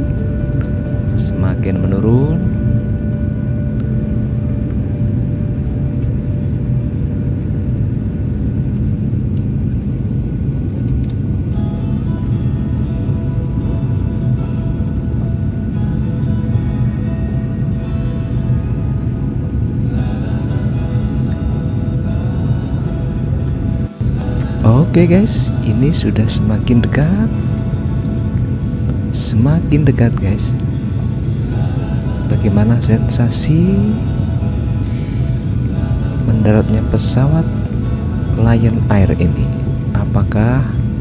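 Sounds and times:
airplane cabin engine rumble: 0:00.0 - 0:41.0
background music: 0:00.0 - 0:41.0.

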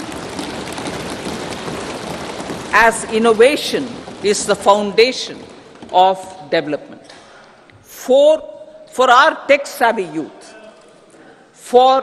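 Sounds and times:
people thumping desks: 0:00.0 - 0:07.6.

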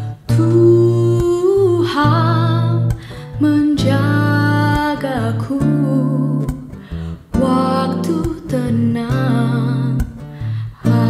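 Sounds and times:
woman singing worship song: 0:00.0 - 0:06.7, 0:07.3 - 0:10.1, 0:10.8 - 0:11.0
guitar accompaniment: 0:00.0 - 0:11.0.

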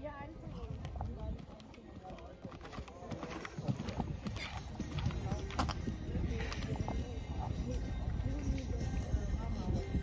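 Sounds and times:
horse hoofbeats on sand: 0:00.1 - 0:10.0.

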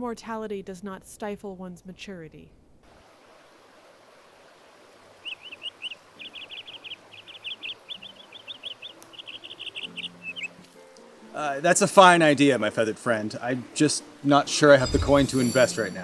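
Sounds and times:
small bird chirping: 0:05.2 - 0:10.6.

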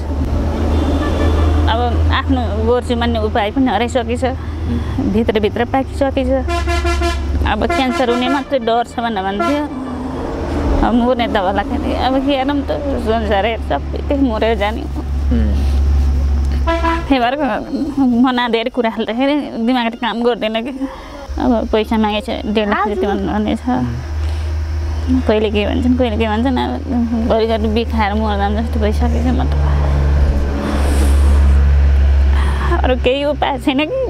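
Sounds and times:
constant low hum: 0:00.0 - 0:34.0
motor vehicle passing: 0:00.0 - 0:34.0
woman speaking: 0:01.7 - 0:04.4, 0:05.0 - 0:06.5, 0:07.4 - 0:10.1, 0:10.7 - 0:15.1, 0:17.1 - 0:24.0, 0:25.0 - 0:30.0, 0:32.4 - 0:34.0
woman's voice: 0:01.7 - 0:06.5, 0:07.4 - 0:15.1, 0:17.1 - 0:24.0, 0:25.1 - 0:30.0, 0:32.4 - 0:34.0
horn toot: 0:06.4 - 0:09.8, 0:16.6 - 0:17.1
low rumble: 0:25.8 - 0:33.6.

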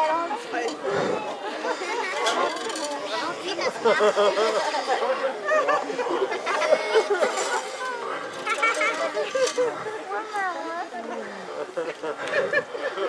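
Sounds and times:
indistinct chatter: 0:00.0 - 0:13.0.

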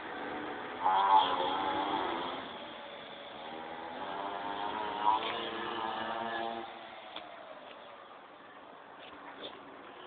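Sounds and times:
small motorbike engine revving: 0:00.0 - 0:07.0.

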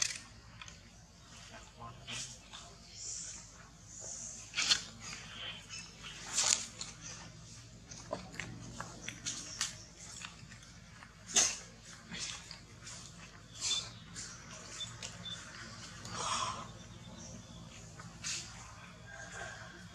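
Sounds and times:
husk and leaves crackling: 0:04.5 - 0:19.7.

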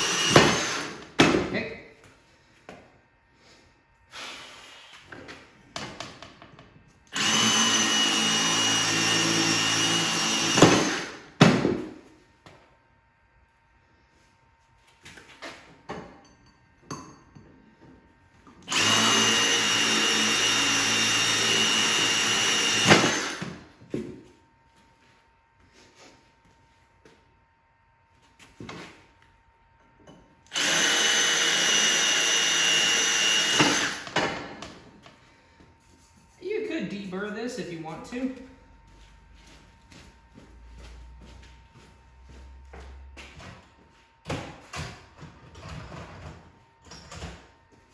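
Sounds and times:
drill whining through steel: 0:00.0 - 0:01.0, 0:07.1 - 0:11.3, 0:18.6 - 0:23.6, 0:30.5 - 0:34.2.

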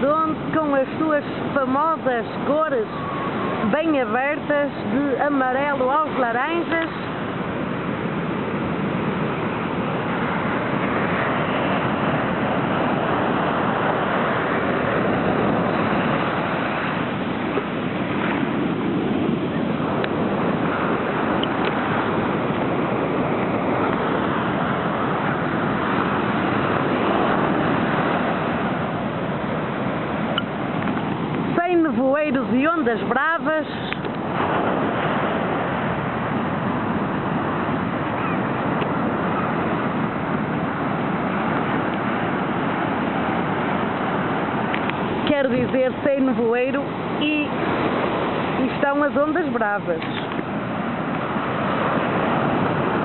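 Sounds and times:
surf breaking on beach: 0:00.0 - 0:53.0.

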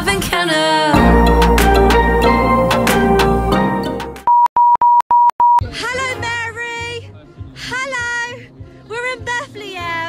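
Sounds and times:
electronic bleep tone: 0:04.3 - 0:05.6.

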